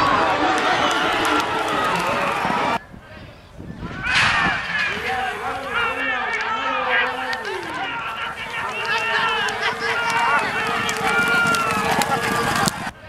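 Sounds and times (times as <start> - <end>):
horses galloping on dirt: 0.0 - 2.8, 5.0 - 13.0
voices calling out: 0.0 - 13.0.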